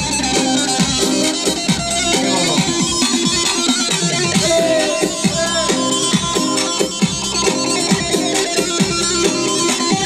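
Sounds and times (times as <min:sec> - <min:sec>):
electronic keyboard: 0:00.0 - 0:10.0
live dance music: 0:00.0 - 0:10.0.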